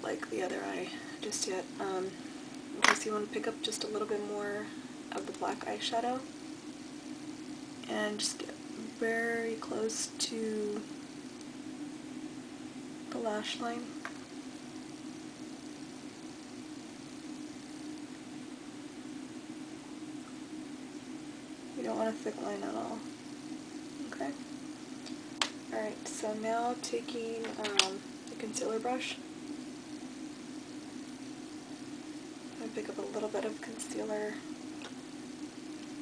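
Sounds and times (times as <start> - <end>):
faint hiss: 0.0 - 36.0
low hum: 0.0 - 36.0.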